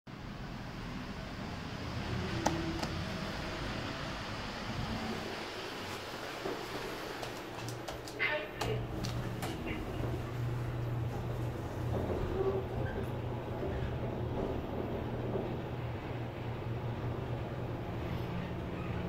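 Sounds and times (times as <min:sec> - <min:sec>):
ventilation hum: 0:00.1 - 0:19.0
footsteps on tile floor: 0:05.8 - 0:14.0
run of clicks: 0:06.4 - 0:10.2.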